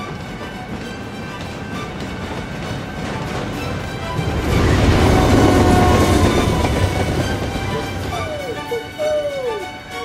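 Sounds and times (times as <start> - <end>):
freight train rumbling past: 0.0 - 10.0.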